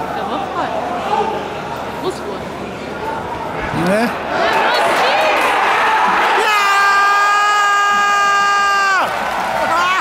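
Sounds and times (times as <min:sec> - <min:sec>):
crowd cheering: 0:04.2 - 0:10.0.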